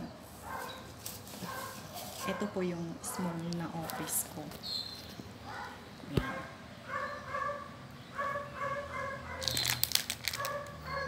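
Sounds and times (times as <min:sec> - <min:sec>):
plastic crackling: 0:09.4 - 0:11.0.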